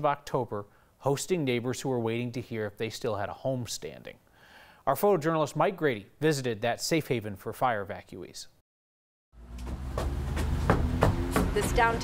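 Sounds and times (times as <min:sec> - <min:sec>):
sharp knocks or clicks: 0:09.5 - 0:11.8.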